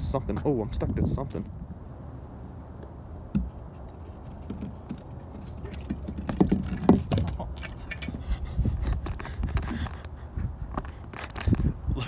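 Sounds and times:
wind rumble on microphone: 0:00.0 - 0:12.0
knocks and clatter: 0:03.3 - 0:08.1.

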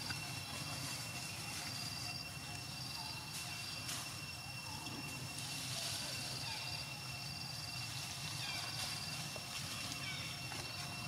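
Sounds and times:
faint chirps: 0:00.0 - 0:11.0
high insect drone: 0:00.0 - 0:11.0.

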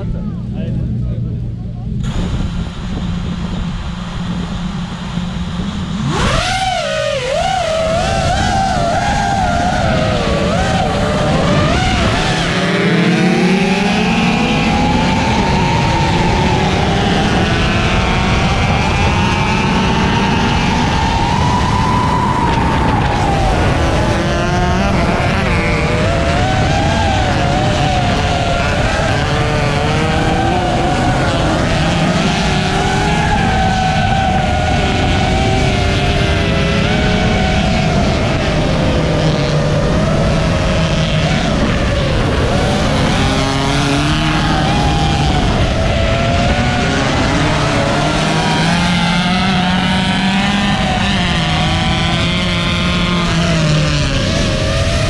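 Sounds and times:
motor revving: 0:02.0 - 0:55.0.

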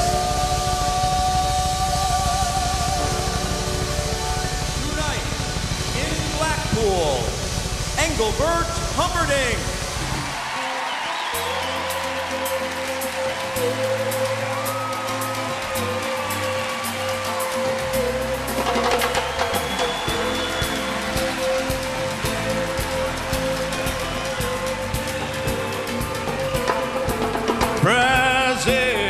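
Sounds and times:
band playing instrumental: 0:03.0 - 0:29.0.

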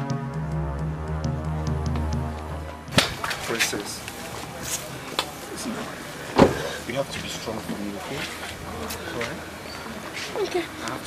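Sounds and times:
car door shutting: 0:06.3 - 0:06.8.

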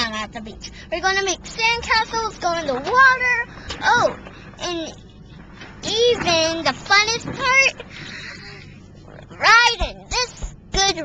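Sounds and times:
moving truck noise: 0:00.0 - 0:11.0.

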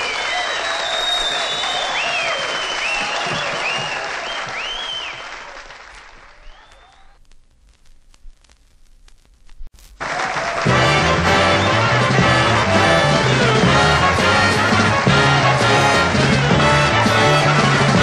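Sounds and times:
audience applauding: 0:00.0 - 0:07.2, 0:10.0 - 0:18.0.

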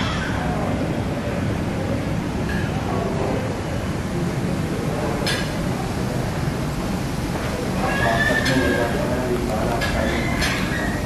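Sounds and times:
restaurant chatter: 0:00.0 - 0:11.0.

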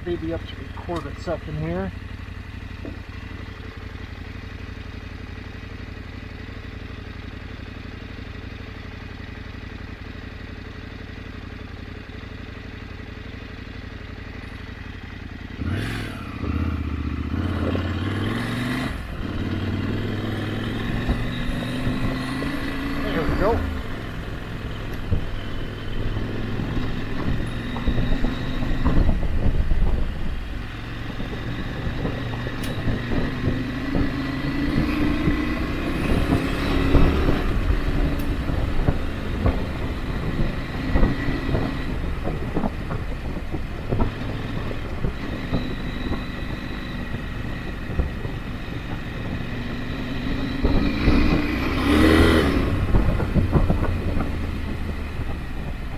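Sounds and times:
motorcycle engine accelerating: 0:00.0 - 0:55.9
gravel knocks and clatter: 0:20.0 - 0:55.9.

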